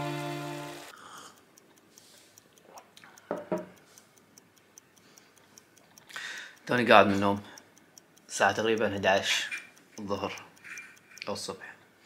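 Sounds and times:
clock ticking fast: 0.6s - 12.0s.

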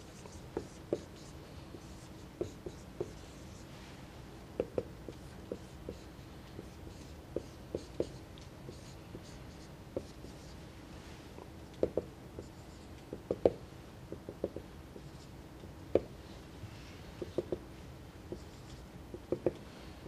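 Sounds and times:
marker pen on a whiteboard: 0.0s - 20.0s.

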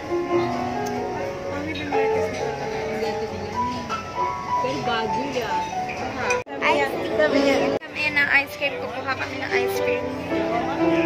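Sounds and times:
grand piano melody: 0.0s - 11.0s.

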